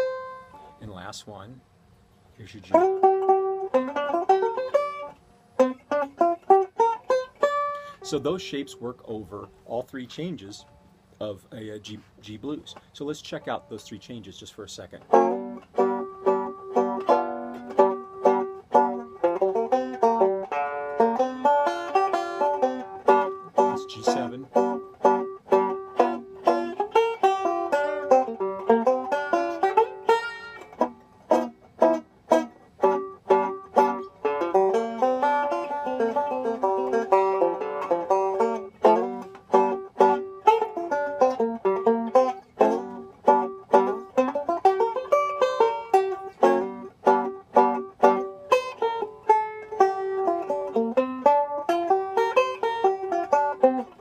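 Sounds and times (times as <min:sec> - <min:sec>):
fingerpicked banjo blues: 0:00.0 - 0:01.5, 0:02.1 - 0:54.0.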